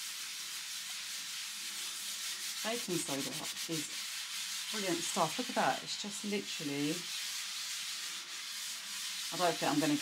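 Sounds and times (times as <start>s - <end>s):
sponge scrubbing a painted surface: 0.0s - 10.0s.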